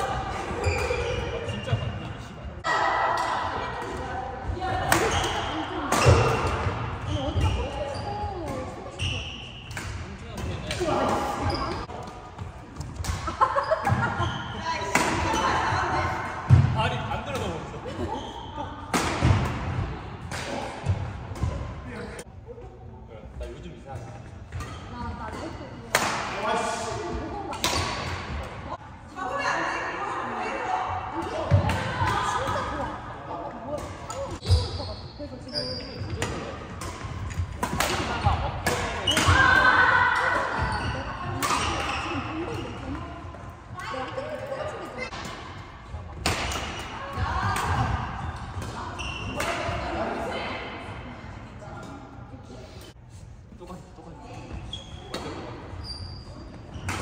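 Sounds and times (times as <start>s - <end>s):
racket hitting shuttlecock: 25.9s - 26.4s.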